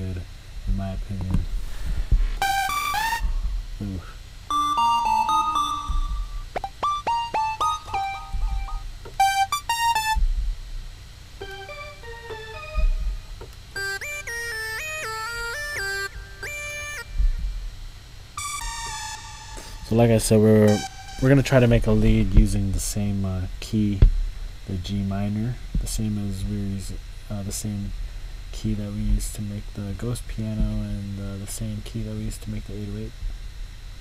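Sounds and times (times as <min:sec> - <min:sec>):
synthesizer lead notes and chords: 0:04.5 - 0:10.2, 0:11.4 - 0:17.4, 0:18.4 - 0:21.7.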